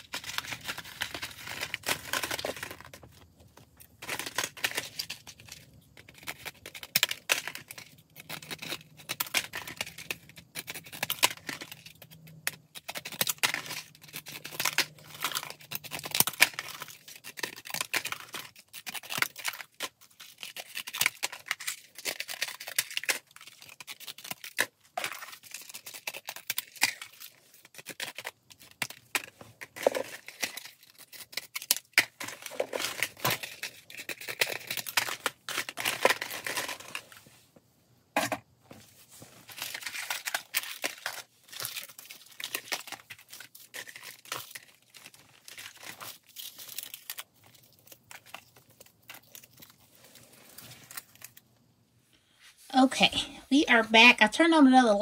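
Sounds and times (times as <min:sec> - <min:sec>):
card packaging rustling: 0:00.0 - 0:08.8, 0:13.0 - 0:37.4, 0:38.7 - 0:51.5.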